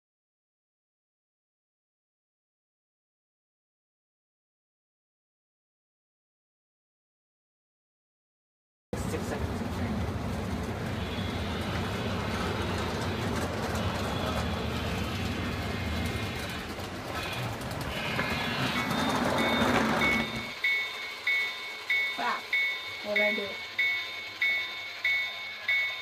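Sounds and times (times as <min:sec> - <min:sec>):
model train rumbling on track: 0:09.0 - 0:26.0
high ringing tone: 0:18.1 - 0:26.0.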